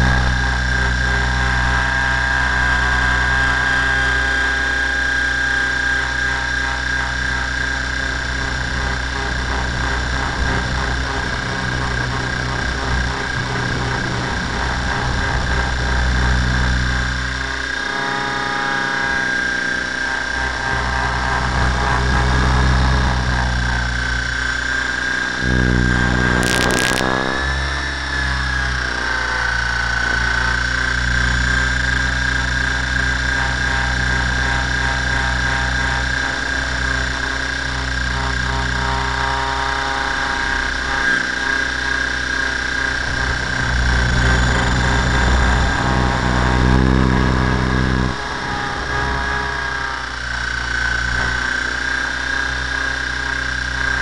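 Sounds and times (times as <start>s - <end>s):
rotor wash rumble on microphone: 0.0s - 17.7s, 18.8s - 54.0s
helicopter rotor whine: 0.0s - 54.0s
brief crackle: 25.4s - 27.4s.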